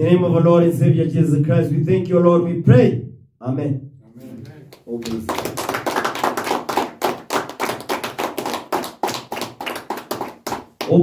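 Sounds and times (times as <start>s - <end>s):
hands clapping: 4.4s - 11.0s.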